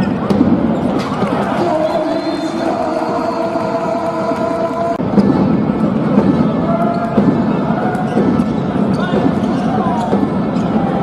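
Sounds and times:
sports hall noise: 0.0 - 11.0.

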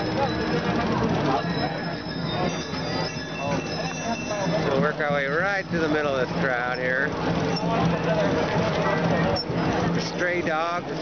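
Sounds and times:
people talking: 0.0 - 11.0
steady low hum: 0.0 - 11.0.

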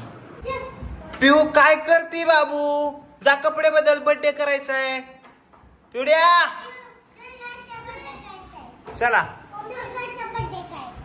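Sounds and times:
children's voices: 0.3 - 1.2, 6.6 - 11.0.

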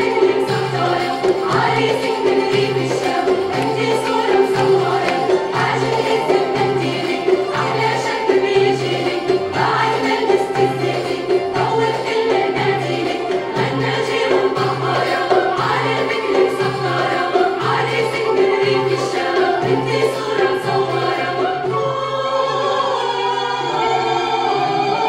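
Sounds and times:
hand drums: 0.0 - 21.8
mixed choir singing: 0.0 - 25.0
string ensemble with oud: 0.0 - 25.0.

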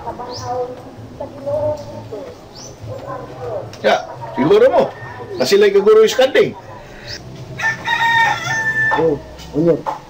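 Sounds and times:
rooster crowing: 4.4 - 5.9, 6.8 - 9.4.

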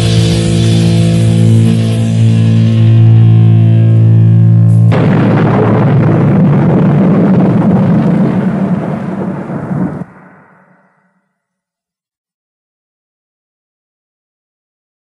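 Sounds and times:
distorted guitar chord: 0.0 - 11.1
crashing noisy metal finale: 0.0 - 11.2.

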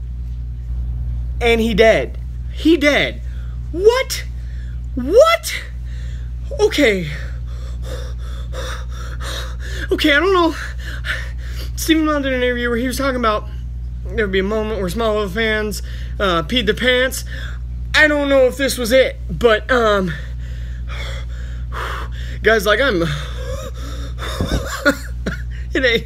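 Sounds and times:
low electrical hum: 0.0 - 26.0
man gasping breathily: 7.2 - 9.9, 20.2 - 22.4, 23.1 - 24.7.

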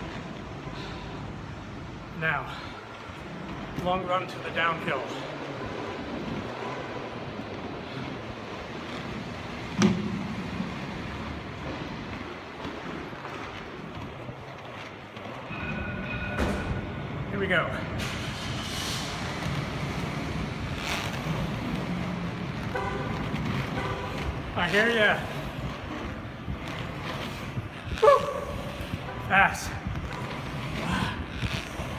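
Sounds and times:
inline skates rolling on concrete: 0.0 - 31.9.

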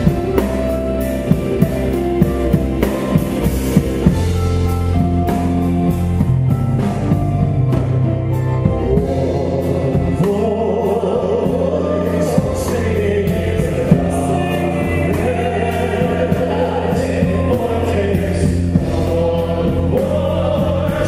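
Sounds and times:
instrumental backing: 0.0 - 21.0
men's choir singing: 8.8 - 21.0.

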